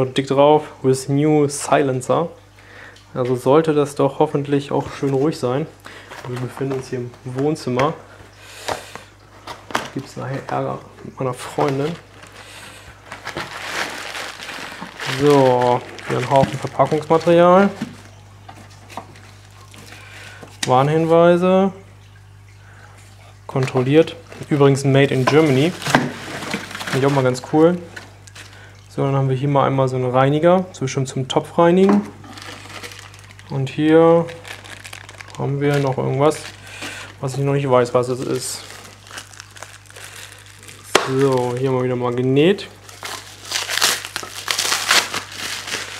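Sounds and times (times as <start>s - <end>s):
plastic packing rustling: 4.5s - 21.4s, 23.5s - 28.9s, 31.8s - 45.9s
plastic bag crinkling: 4.9s - 21.2s, 23.7s - 28.9s, 31.8s - 45.9s.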